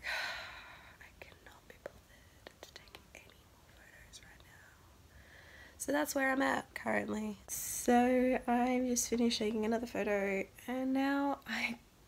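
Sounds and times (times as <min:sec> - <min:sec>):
quiet breathing: 0:00.0 - 0:05.8.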